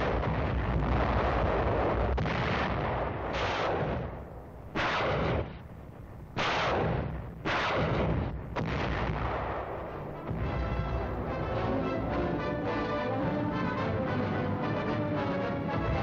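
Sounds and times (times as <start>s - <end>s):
heavy gun blasts: 0.0s - 5.7s, 6.4s - 11.2s.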